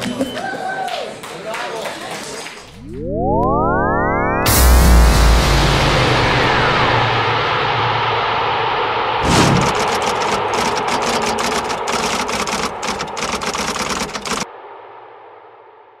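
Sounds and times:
electronic sound effect: 2.8 - 7.3
thump: 9.2 - 9.8
typewriter keystroke clicks: 9.3 - 14.4.

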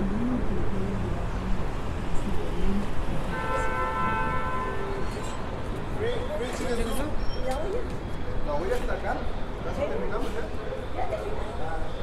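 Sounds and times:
city street noise: 0.0 - 12.0.

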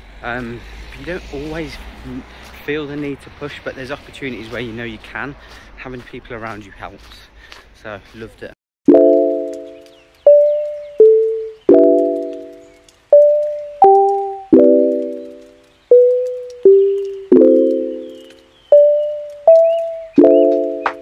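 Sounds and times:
slow piano-like keyboard chords: 8.9 - 21.0.

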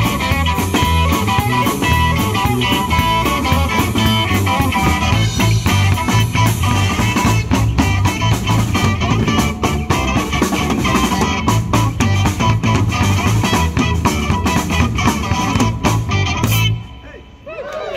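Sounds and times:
rock band playing: 0.0 - 17.4.

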